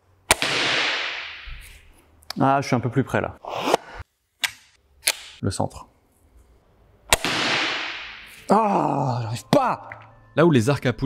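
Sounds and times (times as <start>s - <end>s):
crossbow shot crack: 0.3s - 1.8s, 7.1s - 8.5s.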